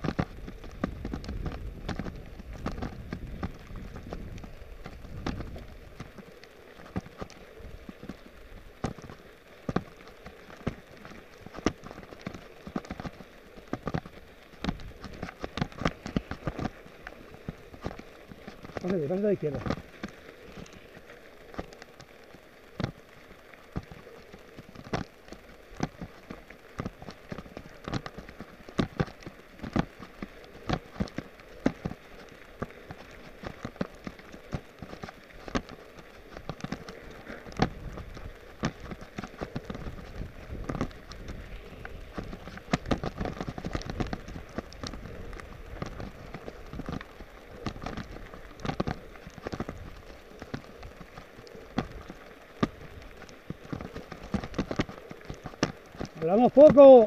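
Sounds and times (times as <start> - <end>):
bike knocking and rattling: 0.0 - 57.0
tyres crunching on gravel: 0.0 - 57.0.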